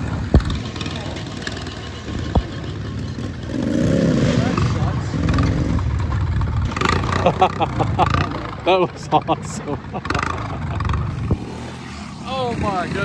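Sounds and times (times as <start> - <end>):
atv engine revving: 0.0 - 13.0.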